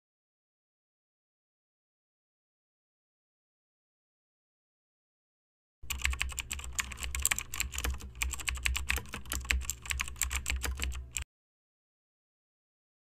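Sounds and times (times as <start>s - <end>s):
keyboard typing clicks: 5.8s - 11.2s.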